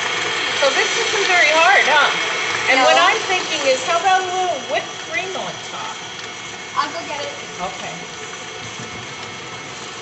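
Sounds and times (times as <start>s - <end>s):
electric kitchen mixer running: 0.0s - 10.0s.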